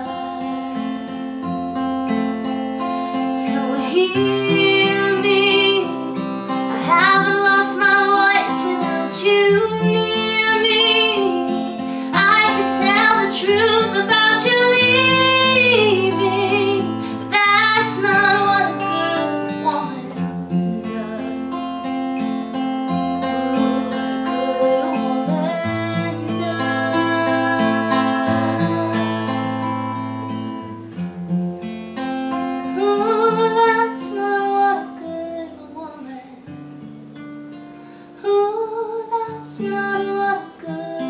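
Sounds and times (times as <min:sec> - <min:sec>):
woman singing: 0:00.0 - 0:00.8, 0:03.1 - 0:30.6, 0:32.6 - 0:36.6, 0:38.2 - 0:41.0
acoustic guitar: 0:00.0 - 0:41.0.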